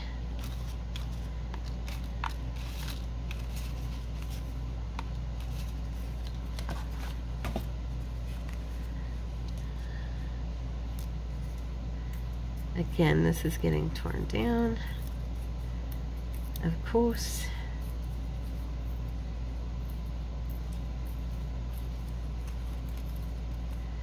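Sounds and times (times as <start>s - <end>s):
steady low hum: 0.0s - 24.0s
paper clippings rustling: 0.4s - 4.5s.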